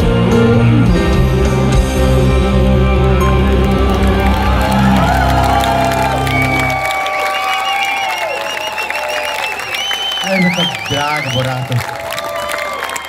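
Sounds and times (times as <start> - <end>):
live rock band: 0.0 - 6.9
crowd cheering and clapping: 3.1 - 13.0
crowd whistling: 3.2 - 13.0.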